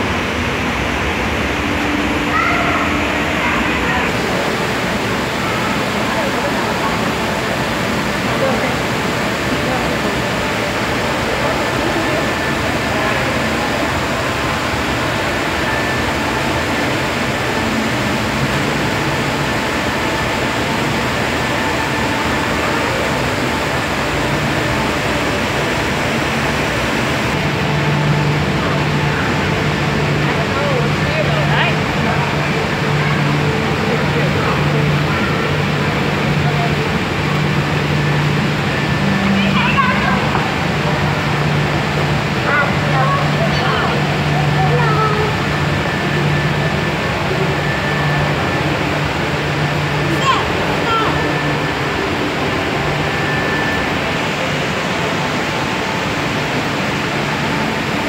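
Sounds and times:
constant rushing noise: 0.0 - 58.0
low steady hum: 0.0 - 58.0.

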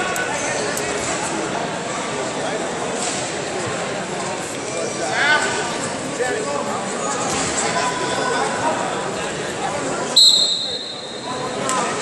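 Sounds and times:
crowd chatter: 0.0 - 12.0
referee's whistle blast: 10.2 - 11.2.

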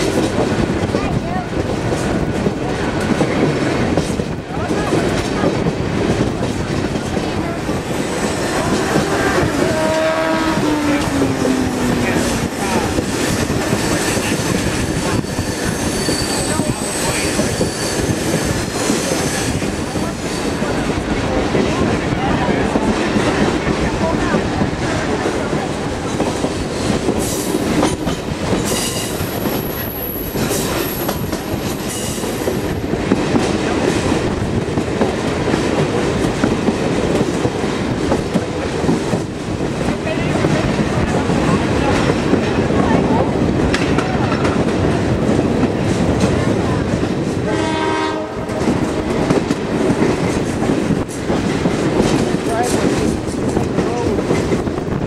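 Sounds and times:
train wheels clattering on rails: 0.0 - 55.0
train horn blast: 8.5 - 12.4, 47.4 - 49.3.

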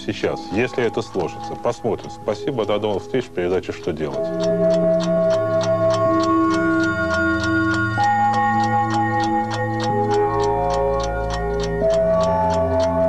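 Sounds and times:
clock-like ticking: 0.0 - 13.0
sustained chords: 0.0 - 13.0.

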